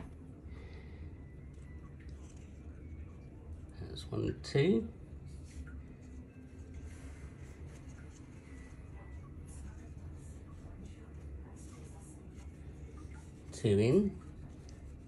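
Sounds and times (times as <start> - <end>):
low steady hum: 0.0 - 15.0
paper towel rustling: 5.1 - 15.0.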